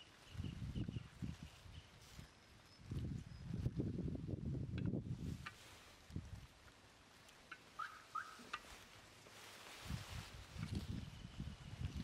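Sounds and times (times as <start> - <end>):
faint bird chirps: 7.8 - 8.5.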